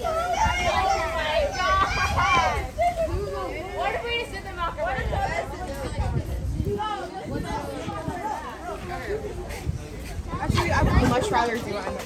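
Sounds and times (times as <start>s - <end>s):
children talking and calling out: 0.0s - 12.0s.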